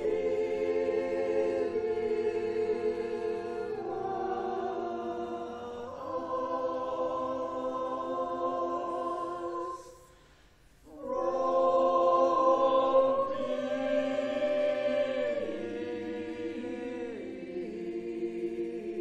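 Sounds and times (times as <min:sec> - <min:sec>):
choir singing held chords: 0:00.0 - 0:19.0.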